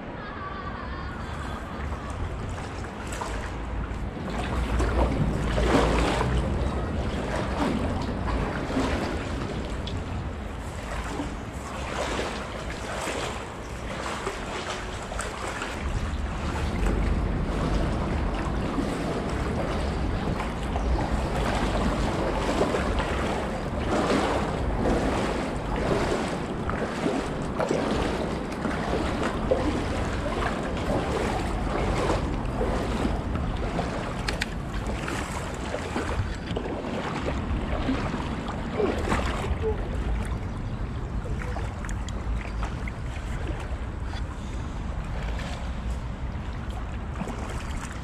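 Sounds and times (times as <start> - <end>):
river water splashing: 0.0 - 48.0
wind rumbling on microphone: 0.0 - 48.0.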